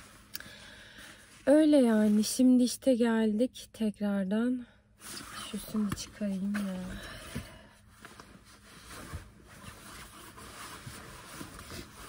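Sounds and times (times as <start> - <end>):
clothing rustling: 5.0 - 12.0.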